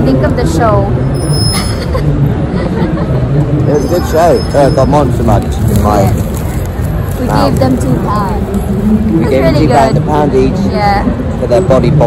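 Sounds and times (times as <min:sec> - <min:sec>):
bus engine running: 0:00.0 - 0:12.0
street traffic: 0:00.0 - 0:12.0.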